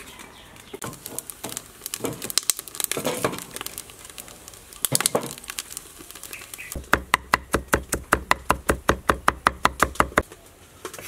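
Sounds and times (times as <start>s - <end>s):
firewood knocks and crackles: 0.6s - 11.0s
cleaver chopping on wooden board: 6.8s - 10.2s.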